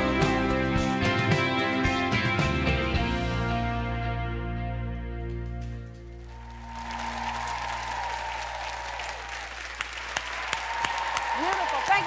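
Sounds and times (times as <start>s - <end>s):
audience applause: 6.2s - 12.0s
audience cheering: 6.2s - 12.0s.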